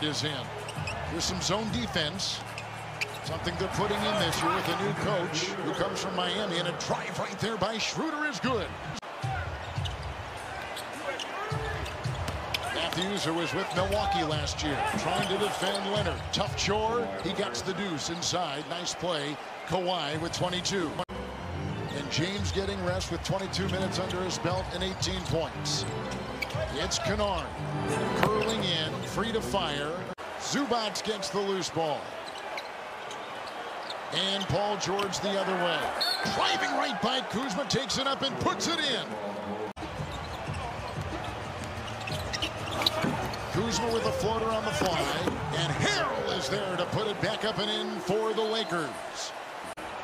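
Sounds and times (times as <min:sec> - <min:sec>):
sneakers squeaking on floor: 0:00.5 - 0:01.6, 0:02.4 - 0:03.5, 0:09.3 - 0:16.3, 0:23.7 - 0:27.1, 0:28.1 - 0:29.0, 0:32.0 - 0:34.5, 0:35.9 - 0:36.4, 0:39.8 - 0:45.5.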